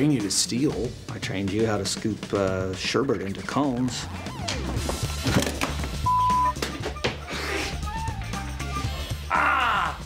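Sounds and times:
background music: 0.0 - 10.0
censor bleep: 6.1 - 6.6.

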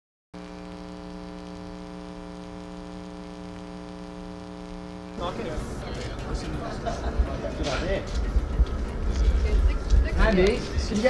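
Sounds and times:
guitar amplifier hum: 0.4 - 10.9.

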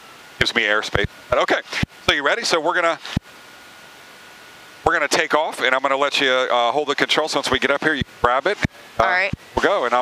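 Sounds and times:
faint thin steady tone: 0.0 - 10.0
man's voice: 0.4 - 3.0, 4.9 - 10.0
headset intercom hiss: 0.4 - 3.2, 7.6 - 10.0.

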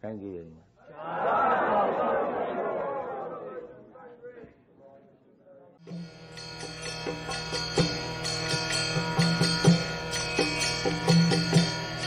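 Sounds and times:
group shouting together: 0.9 - 3.7.

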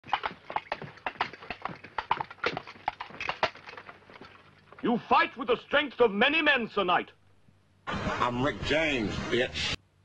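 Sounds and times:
coconut shells clip-clopping: 0.0 - 5.0.

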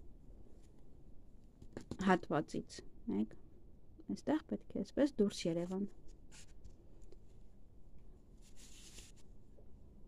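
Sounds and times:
hands rustling yarn: 5.6 - 9.7.

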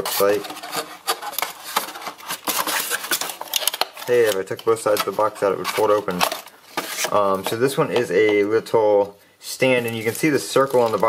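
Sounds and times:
cardboard packaging rustling: 0.0 - 8.7, 9.6 - 11.0.

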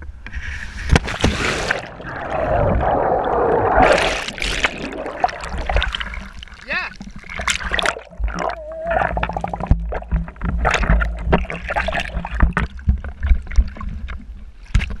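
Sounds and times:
low rumble of water: 0.0 - 15.0
sea water splashing: 0.8 - 14.7
muffled underwater gurgling: 1.4 - 12.6.

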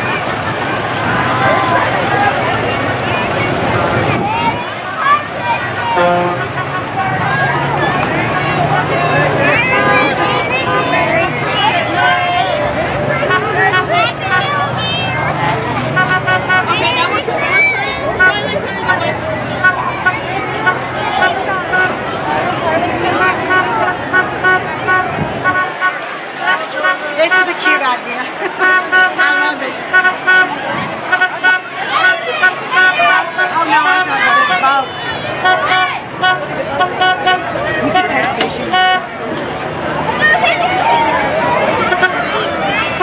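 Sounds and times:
vehicle engine running low: 0.0 - 27.6
people calling out and chattering: 0.0 - 43.0
horn tooting short beeps: 5.9 - 7.0, 16.0 - 16.9, 19.6 - 22.0, 23.2 - 27.8, 28.6 - 30.5, 31.1 - 34.4, 35.4 - 39.1, 41.9 - 42.4.

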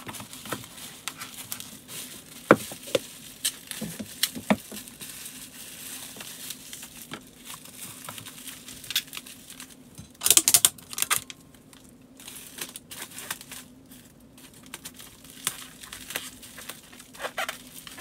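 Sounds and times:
faint steady hum: 0.0 - 18.0
plastic packing crinkling: 0.0 - 18.0.

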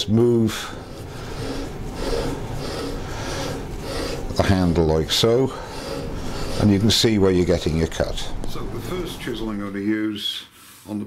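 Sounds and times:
chisel scraping wood on lathe: 0.5 - 9.6.

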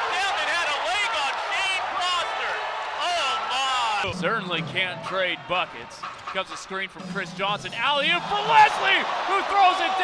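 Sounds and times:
commentator talking: 0.0 - 10.0
crowd noise: 0.0 - 10.0.

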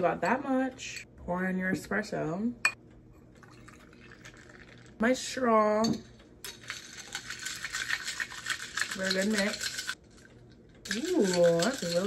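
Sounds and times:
ice cubes clinking in glass: 6.5 - 10.0, 10.9 - 12.0.

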